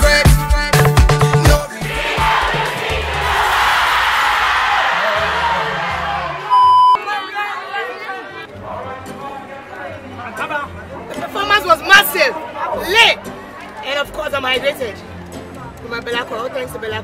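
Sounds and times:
music with low beat: 0.0s - 3.4s
crowd chattering and laughing: 1.6s - 17.0s
crowd screaming and cheering: 1.7s - 8.5s
loud electronic beep: 6.5s - 7.0s.

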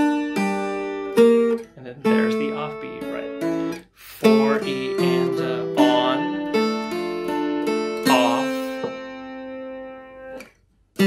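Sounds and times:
plucked guitar-like string notes: 0.0s - 11.0s.

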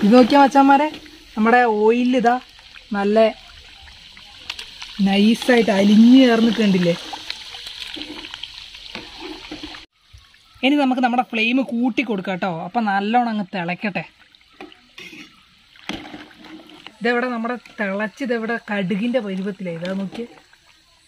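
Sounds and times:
hot oil bubbling and sizzling: 0.0s - 21.0s.

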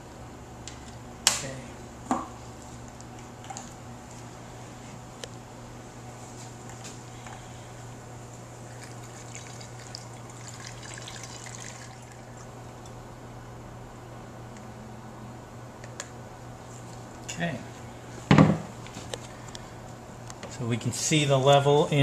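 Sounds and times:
steady low hum: 0.0s - 22.0s
liquid pouring through funnel: 8.6s - 12.6s.

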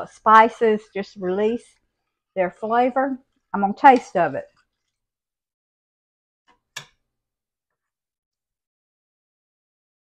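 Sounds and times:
spoon tapping saucepan: 3.8s - 4.2s.

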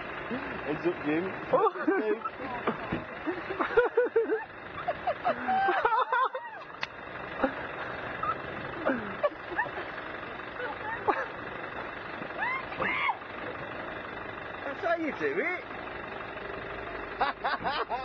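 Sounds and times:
vehicle engine: 0.0s - 18.0s
people calling out: 12.3s - 13.4s.

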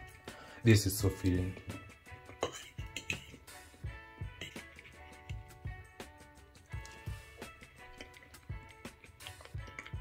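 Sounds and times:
background music with plucked tones: 0.0s - 10.0s.

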